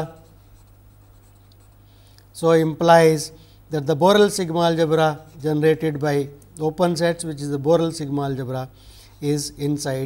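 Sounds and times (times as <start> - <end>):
pen scratching on paper: 0.5 - 1.8.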